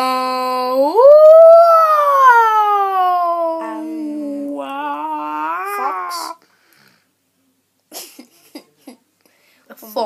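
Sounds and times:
boy imitating whale call: 0.8s - 6.4s.

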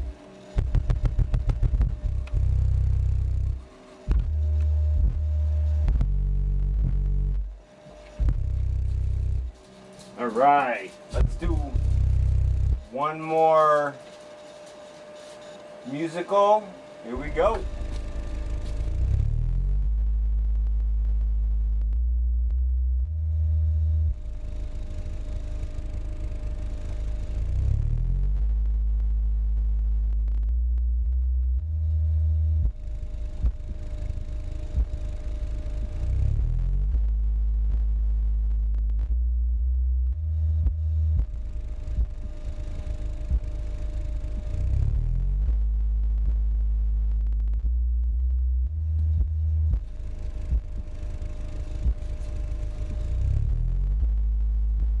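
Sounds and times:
deep stepped bass notes: 0.0s - 55.0s
rapid pulsing bass beats: 0.0s - 55.0s.

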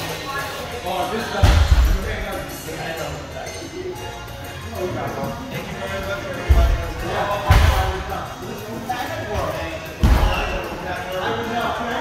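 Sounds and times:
background music: 0.0s - 12.0s
voices in echoing hall: 0.0s - 12.0s.

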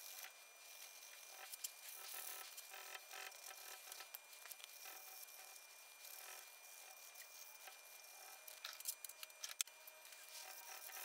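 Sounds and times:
abrasive strip scratching metal: 0.0s - 11.0s
sharp scratchy ticks: 0.0s - 11.0s.

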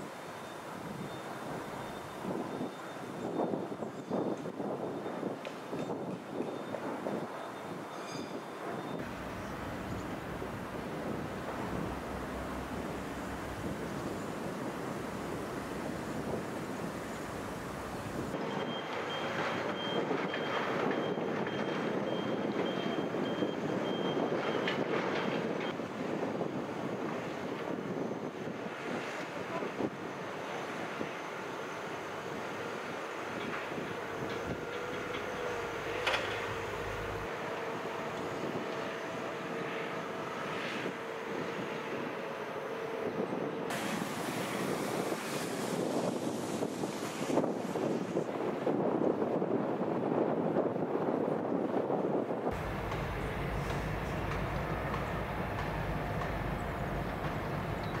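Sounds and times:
construction machinery running: 8.9s - 25.7s, 30.2s - 46.1s, 52.5s - 58.0s
reversing alarm beeping: 18.4s - 25.8s.

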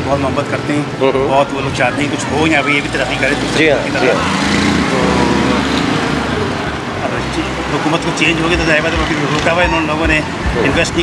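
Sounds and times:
steady low traffic rumble: 0.0s - 11.0s
auto-rickshaw pulling in: 1.0s - 10.9s.

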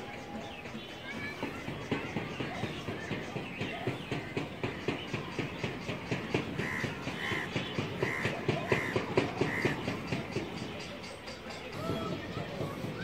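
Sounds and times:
crow cawing: 6.6s - 9.8s.

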